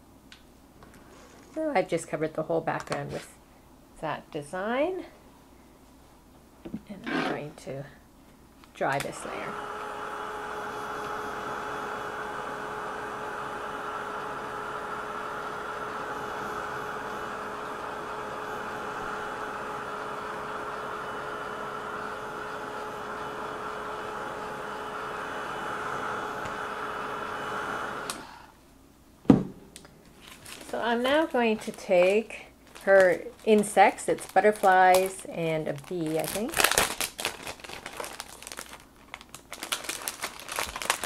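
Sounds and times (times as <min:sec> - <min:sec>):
heat tool blowing air: 0:09.0 - 0:28.6.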